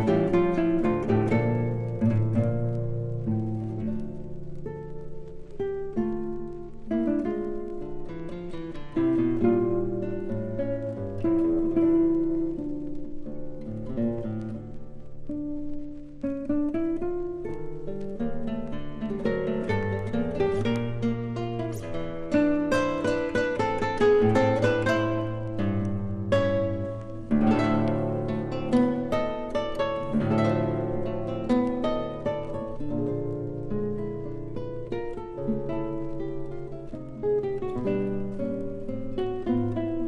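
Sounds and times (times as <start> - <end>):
classical guitar duet: 0.0 - 40.0.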